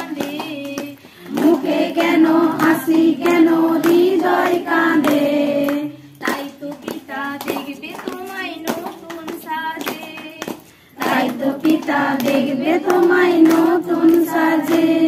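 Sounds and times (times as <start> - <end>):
hands clapping in time: 0.0 - 15.0
people singing devotional song: 0.0 - 15.0.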